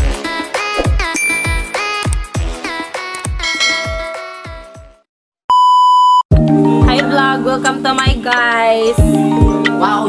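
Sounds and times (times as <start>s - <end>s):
electronic test-pattern beep: 1.2s - 1.9s.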